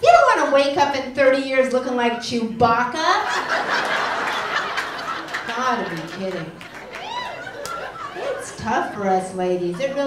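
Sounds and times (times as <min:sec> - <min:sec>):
audience laughing: 0:03.2 - 0:10.0.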